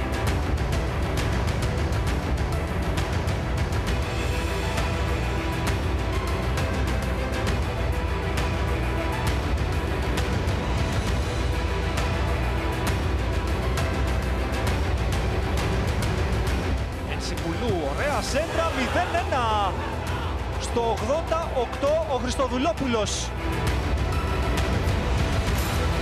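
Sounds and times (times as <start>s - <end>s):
background music with steady beat: 0.0s - 26.0s
person speaking: 17.1s - 19.8s.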